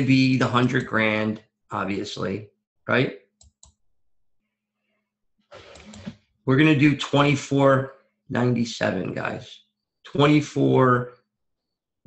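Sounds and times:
person speaking: 0:00.0 - 0:03.2.

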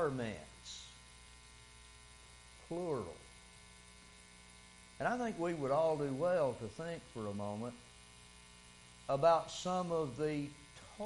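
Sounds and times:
man speaking: 0:00.0 - 0:00.9, 0:02.7 - 0:03.2, 0:05.0 - 0:07.8, 0:09.1 - 0:11.0
electrical mains hum: 0:00.0 - 0:11.0.

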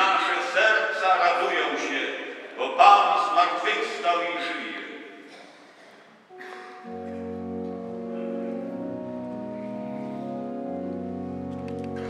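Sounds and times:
person speaking: 0:00.0 - 0:05.1, 0:06.3 - 0:10.4
church reverberation: 0:00.0 - 0:12.0
low organ bass notes: 0:06.3 - 0:12.0
organ chords: 0:06.3 - 0:12.0.

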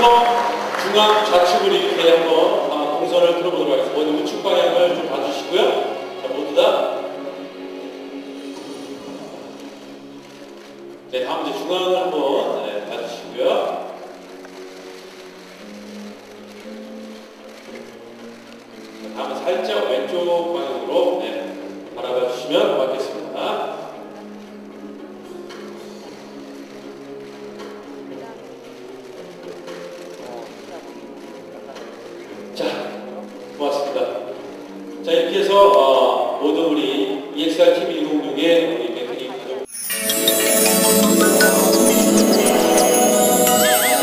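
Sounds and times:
music with long held notes: 0:00.0 - 0:33.6, 0:39.7 - 0:44.0.

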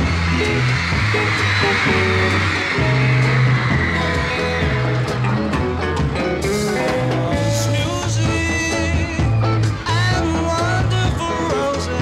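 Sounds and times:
bass guitar line: 0:00.0 - 0:12.0
electric guitar melody: 0:00.0 - 0:12.0.

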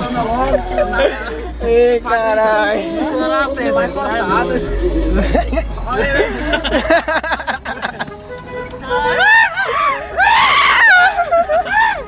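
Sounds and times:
people yelling and screaming: 0:08.8 - 0:12.0.

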